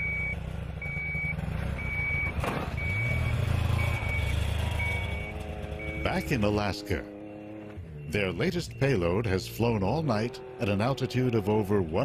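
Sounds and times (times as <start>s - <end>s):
electronic beeper high tone: 0.0s - 10.8s
vehicle engine hum: 0.0s - 12.0s.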